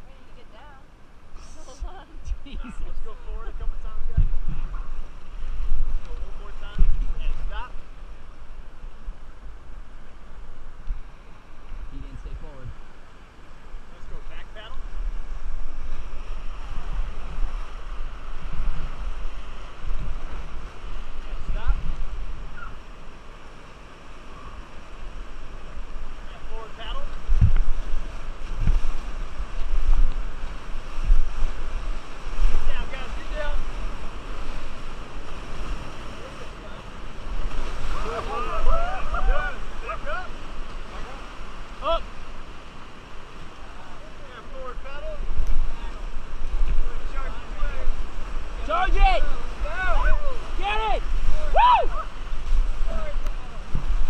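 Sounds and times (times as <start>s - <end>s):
wind buffeting microphone: 0.0s - 44.0s, 44.7s - 54.0s
rushing river water: 0.0s - 54.0s.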